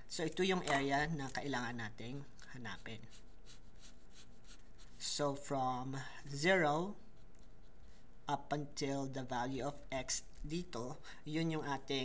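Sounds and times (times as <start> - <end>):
marker scratching on paper: 2.6 - 5.2, 7.0 - 8.1.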